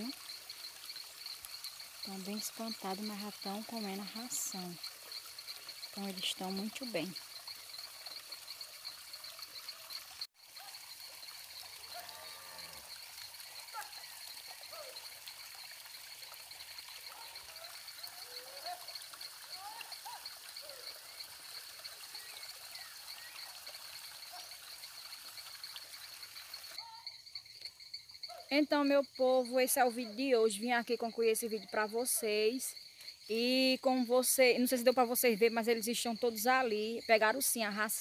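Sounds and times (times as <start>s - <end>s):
pulsing insect chirr: 0.0s - 38.0s.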